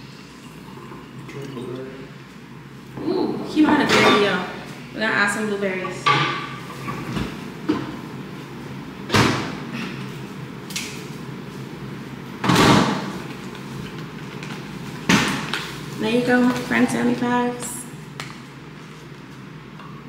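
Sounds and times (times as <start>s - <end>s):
refrigerator door opening and shutting: 9.1s - 9.6s, 12.4s - 13.2s.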